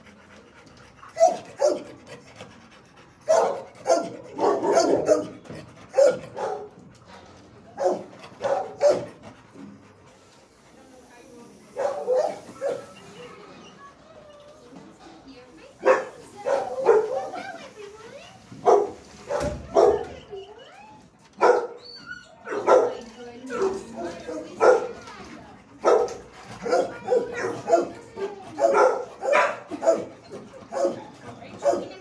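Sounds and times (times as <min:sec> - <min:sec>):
dogs barking: 0:01.1 - 0:02.0, 0:03.2 - 0:06.9, 0:07.8 - 0:09.3, 0:11.8 - 0:13.0, 0:15.8 - 0:17.6, 0:18.5 - 0:20.2, 0:21.4 - 0:21.8, 0:22.4 - 0:25.0, 0:25.8 - 0:32.0
dog yips and whines: 0:21.4 - 0:22.5.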